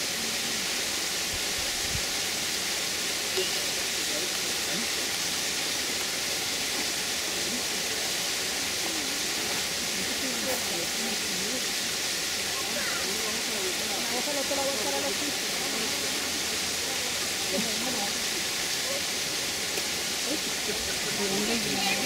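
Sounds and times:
outdoor background hiss: 0.0s - 22.0s.

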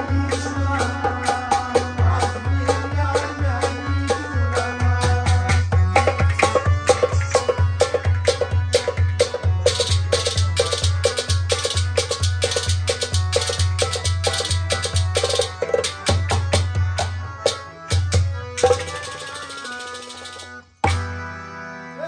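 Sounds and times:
clay-pot drum played by hand: 0.0s - 21.1s
harmonium held notes: 0.0s - 22.0s.

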